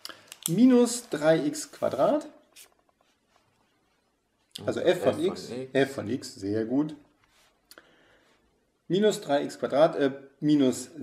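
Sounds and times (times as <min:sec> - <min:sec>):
man speaking: 0:00.5 - 0:02.4, 0:04.6 - 0:07.1.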